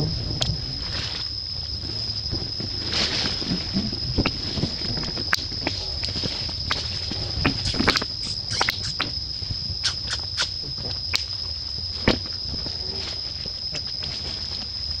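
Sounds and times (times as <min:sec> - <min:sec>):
high-pitched insect drone: 0:00.0 - 0:15.0
short clicks and chirps: 0:07.6 - 0:09.0, 0:09.8 - 0:10.5.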